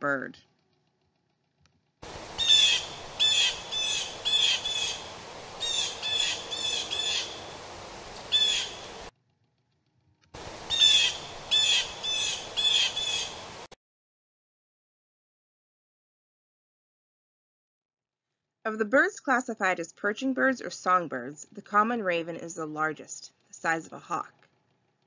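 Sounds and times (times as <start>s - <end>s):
blue jay calling: 2.0s - 9.1s, 10.5s - 13.7s
faint steady hiss: 2.0s - 9.1s, 10.4s - 13.8s.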